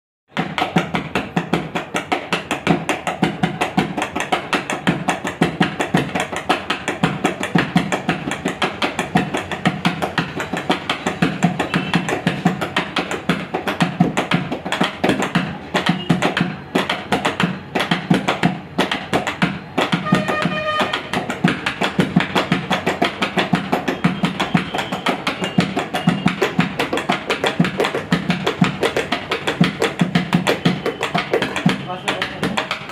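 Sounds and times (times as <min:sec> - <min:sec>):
hands drumming on a tabletop: 0:00.3 - 0:32.9.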